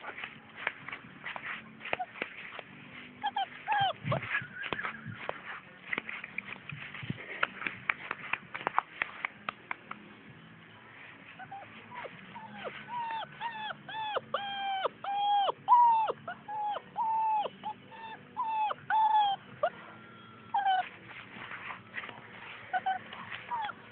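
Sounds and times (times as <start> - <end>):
puppy whining: 1.9 - 5.4, 11.4 - 21.3, 22.4 - 23.9.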